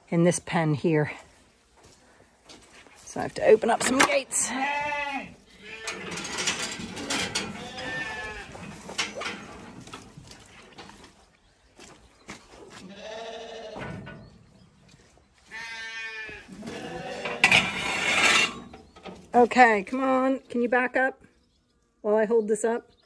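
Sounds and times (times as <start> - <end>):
lambs bleating: 4.4 - 6.1, 7.5 - 8.6, 12.9 - 13.8, 15.5 - 17.4
metal gates clanking: 5.6 - 10.2, 16.7 - 19.2.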